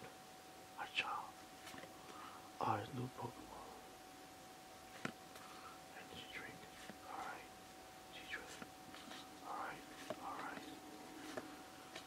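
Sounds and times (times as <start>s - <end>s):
cards swishing against each other: 8.2s - 12.0s.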